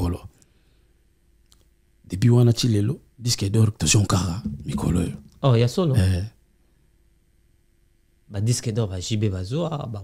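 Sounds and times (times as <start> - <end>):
faint room hum: 0.0 - 10.0
faint click: 1.4 - 1.7
man speaking: 3.9 - 6.2.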